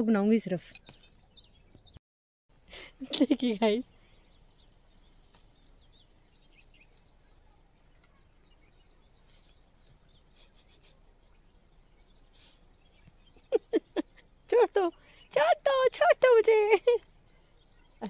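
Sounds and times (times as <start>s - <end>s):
high bird chirps: 0.6s - 15.8s, 16.4s - 18.0s
woman laughing: 2.8s - 3.8s, 13.4s - 14.9s, 16.2s - 17.0s.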